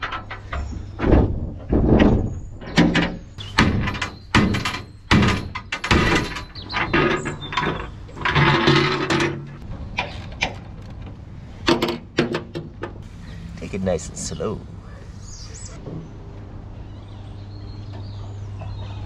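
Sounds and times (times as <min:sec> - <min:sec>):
metal clunks and knocks: 0:00.0 - 0:13.0.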